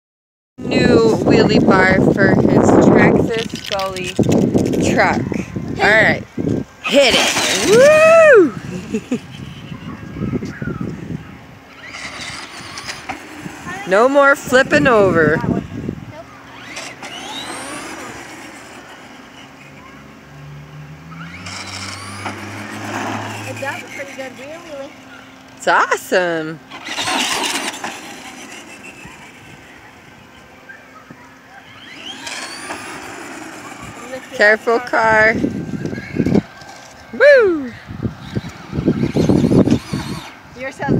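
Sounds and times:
electric motor whining: 0:00.7 - 0:40.9.

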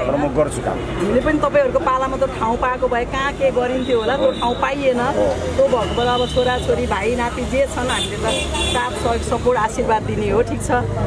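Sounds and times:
passing vehicles rumbling: 0:00.0 - 0:11.0
woman speaking: 0:01.2 - 0:11.0
vehicle horn: 0:07.9 - 0:08.9.

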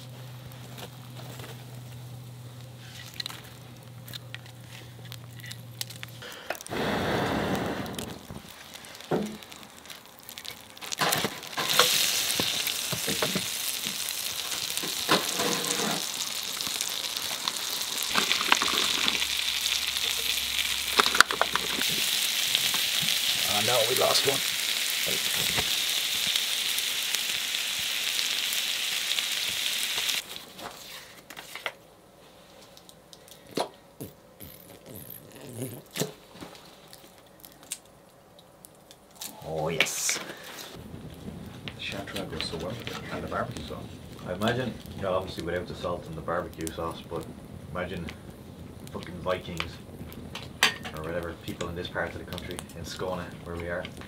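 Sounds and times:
food sizzling in a pan: 0:06.6 - 0:30.4.

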